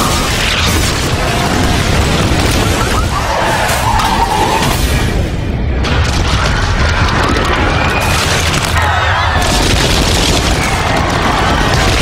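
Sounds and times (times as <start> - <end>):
falling masonry rumbling and crashing: 0.0 - 12.0.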